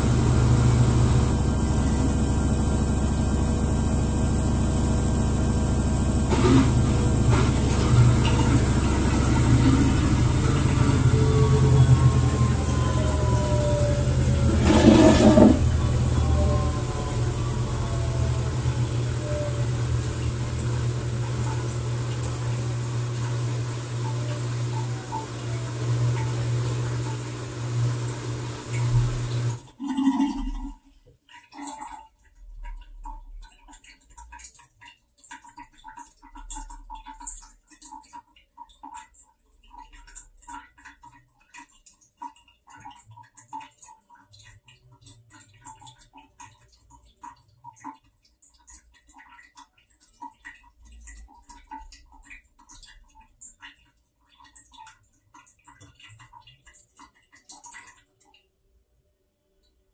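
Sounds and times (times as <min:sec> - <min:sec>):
rush of water: 0:00.0 - 0:29.6
washing machine spinning with whine: 0:00.0 - 0:58.4.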